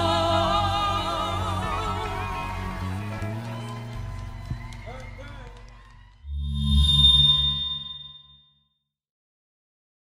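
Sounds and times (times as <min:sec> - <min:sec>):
soul band with vocal: 0:00.0 - 0:03.2
electronic logo sting: 0:06.3 - 0:08.5.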